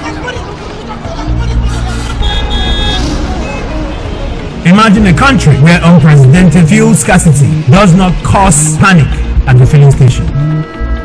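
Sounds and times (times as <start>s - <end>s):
road traffic: 0.0s - 11.0s
car horns honking: 1.2s - 5.0s.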